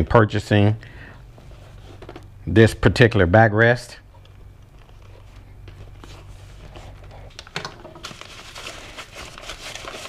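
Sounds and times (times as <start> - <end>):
plastic and foam wrap crinkling: 4.2 - 10.0.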